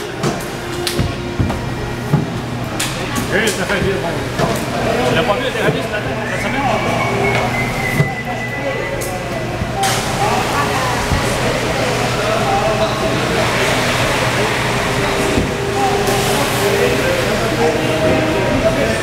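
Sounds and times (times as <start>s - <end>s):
music playing: 0.0s - 12.3s
crowd chatter: 0.0s - 19.0s.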